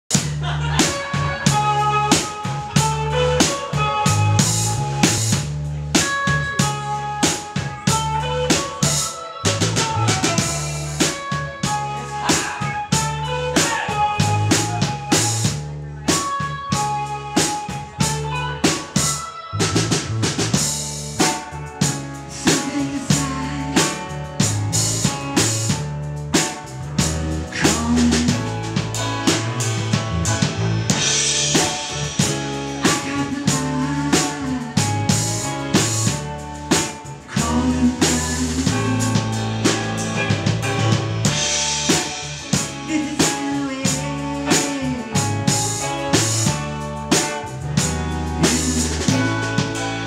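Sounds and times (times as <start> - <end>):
drum kit steady beat: 0.0 - 50.0
electric bass: 0.0 - 50.0
twelve-string electric guitar: 0.1 - 50.0.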